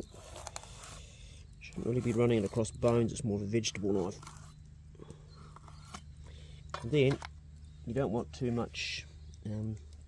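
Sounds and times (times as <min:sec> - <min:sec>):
knife scraping through fish skin: 0:01.8 - 0:02.7.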